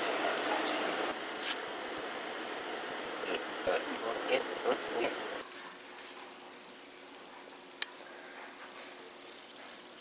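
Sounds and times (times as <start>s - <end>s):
fidget spinner whirring: 5.4s - 10.0s.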